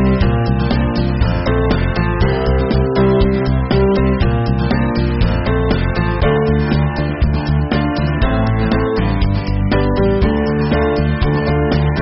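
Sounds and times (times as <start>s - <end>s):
bass line: 0.0s - 12.0s
guitar instrumental music: 0.0s - 12.0s.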